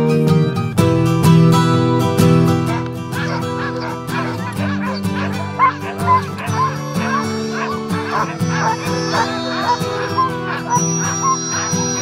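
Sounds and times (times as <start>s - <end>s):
acoustic guitar music: 0.0s - 12.0s
dogs yipping and barking: 1.8s - 12.0s.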